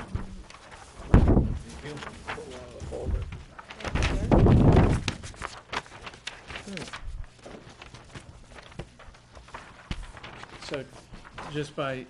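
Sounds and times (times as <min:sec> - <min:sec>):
paper rustling and shuffling: 0:00.0 - 0:12.0.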